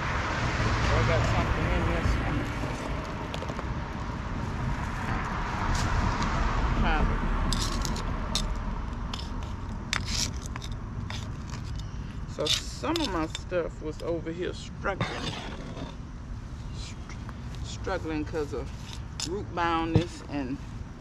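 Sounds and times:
trowel scraping soil: 0:07.5 - 0:17.0.

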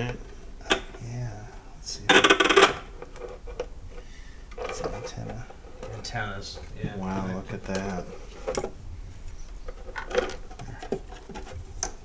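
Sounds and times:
sharp clicks and knocks: 0:02.1 - 0:03.7, 0:09.6 - 0:12.0
radio back panel being handled: 0:02.2 - 0:12.0.

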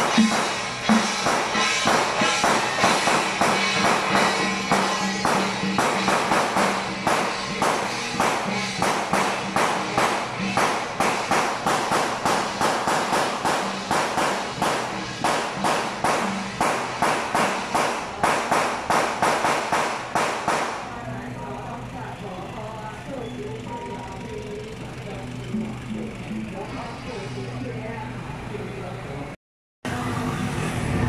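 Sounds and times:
hand drums beating marching rhythm: 0:00.0 - 0:20.9.

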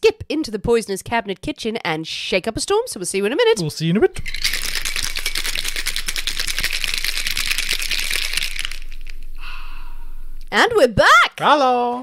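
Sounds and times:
ice rattling in cocktail shaker: 0:04.2 - 0:09.2.

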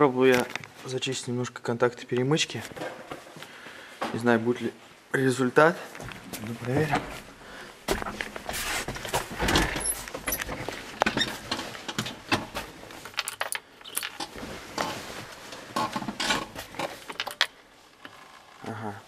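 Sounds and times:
clicks knocks and rustling: 0:07.9 - 0:17.6.

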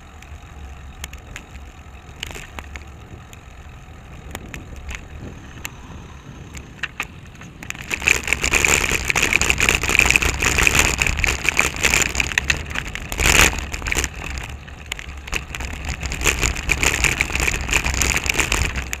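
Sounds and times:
bicycle rattling over rough pavement: 0:00.0 - 0:19.0.

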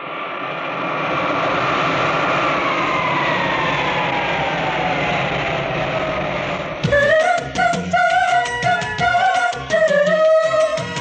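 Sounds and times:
jet engines whining: 0:00.0 - 0:11.0.

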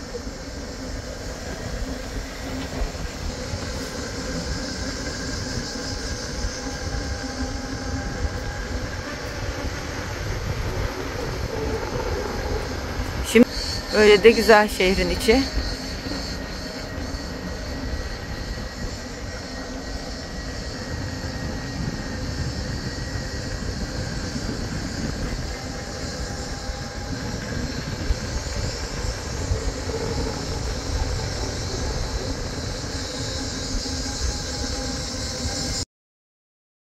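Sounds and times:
rolling road noise: 0:00.0 - 0:35.8
wind: 0:00.0 - 0:35.8.

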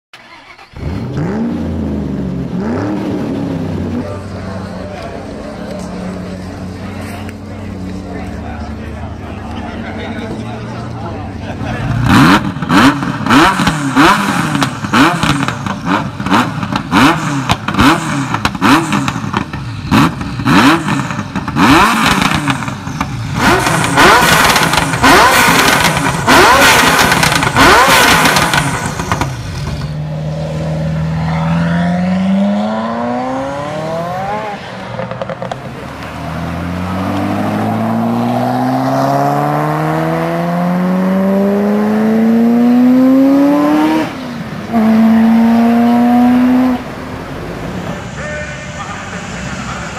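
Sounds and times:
engine accelerating through gears: 0:00.2 - 0:04.2, 0:11.8 - 0:47.0
car engine revving: 0:00.2 - 0:49.9.

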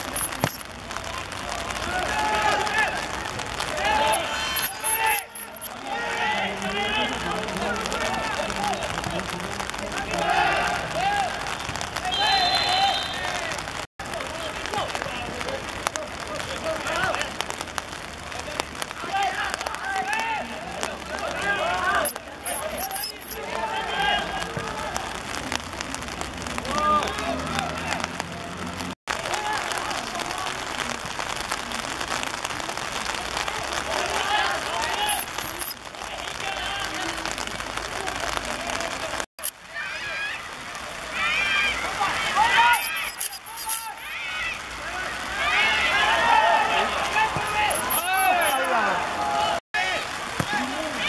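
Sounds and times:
people shouting and calling out: 0:01.1 - 0:17.4, 0:18.4 - 0:25.4, 0:33.3 - 0:51.0.

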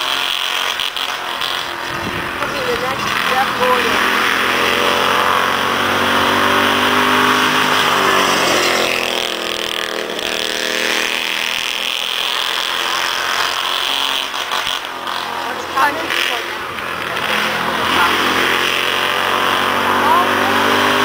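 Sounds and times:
race car engine buzzing: 0:00.0 - 0:21.0.

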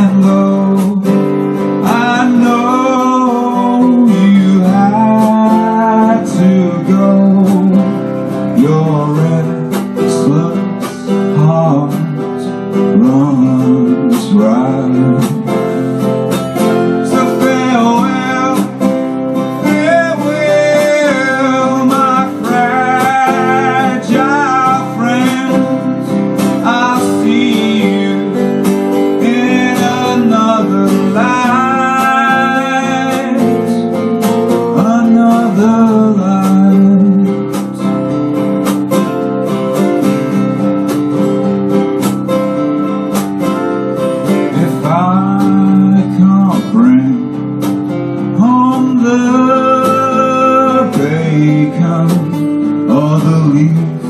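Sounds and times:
man singing: 0:00.0 - 0:38.1, 0:44.2 - 0:54.0
acoustic guitars: 0:00.0 - 0:54.0.

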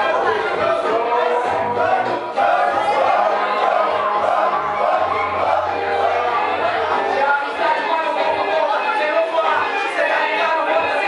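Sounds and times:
crowd shouting and chanting: 0:00.0 - 0:11.0
music with low bass: 0:00.0 - 0:11.0.

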